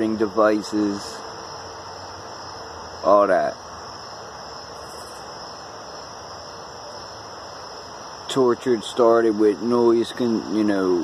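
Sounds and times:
crickets trilling: 0.0s - 11.0s
low background hiss: 0.0s - 11.0s.

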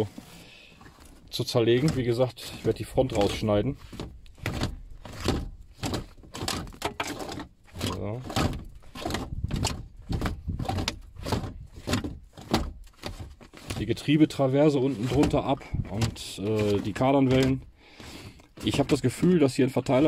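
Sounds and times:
gear lever clunks and rattles: 0.0s - 20.0s.

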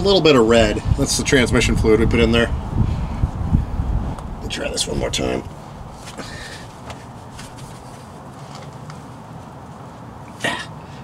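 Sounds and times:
hands clicking and rustling: 6.0s - 9.5s
man huffing breath: 6.1s - 7.1s.

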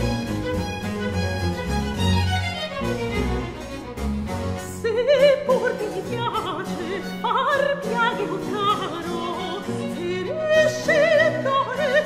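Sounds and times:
small instrumental ensemble: 0.0s - 12.0s
soprano singing with vibrato: 4.7s - 12.0s.

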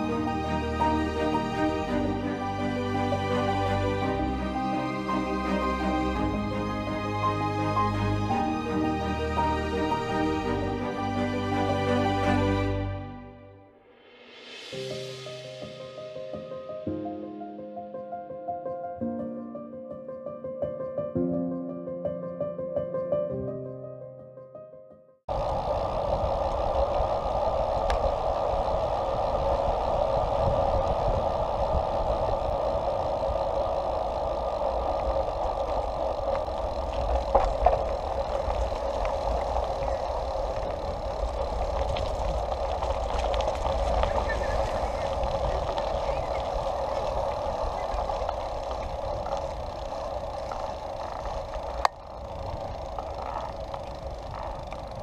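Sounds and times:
wind on microphone: 0.0s - 12.5s, 25.3s - 55.0s
bicycle tyres rolling on gravel: 0.0s - 12.8s, 25.3s - 55.0s.

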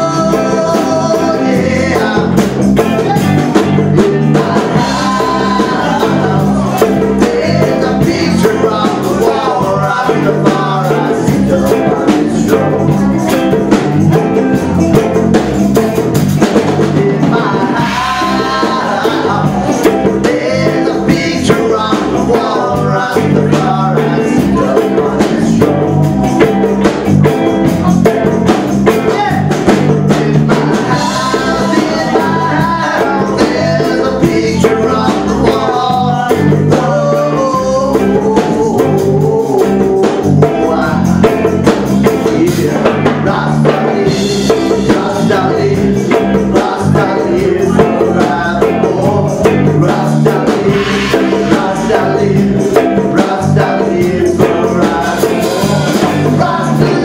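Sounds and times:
man singing into a microphone: 0.0s - 15.5s, 16.4s - 26.8s, 27.7s - 57.0s
guitar accompaniment: 0.0s - 57.0s
live rock band playing: 0.0s - 57.0s.

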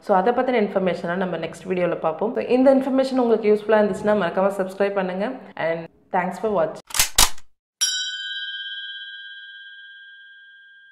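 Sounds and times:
bell-like chime ringing: 7.8s - 10.9s.

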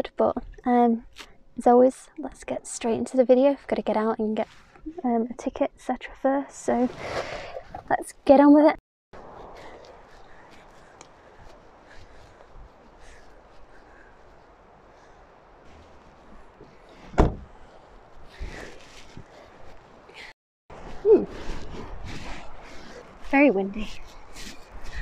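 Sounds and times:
rustling and handling noise: 4.3s - 4.9s, 9.2s - 25.0s
car door shutting: 17.1s - 17.5s.

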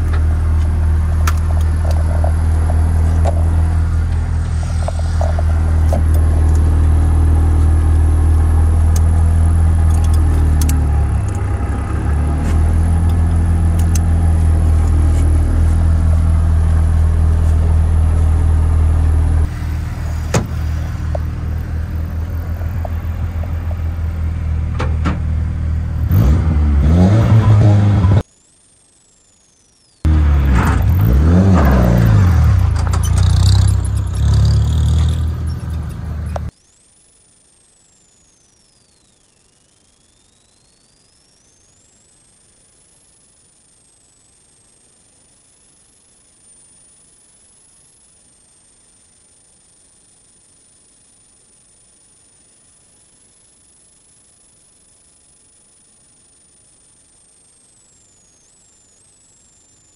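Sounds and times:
car engine idling and revving: 0.0s - 28.2s, 30.1s - 36.5s.

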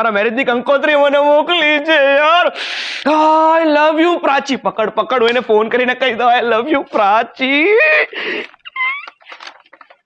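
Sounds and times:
man squealing like a cat: 7.6s - 9.4s.

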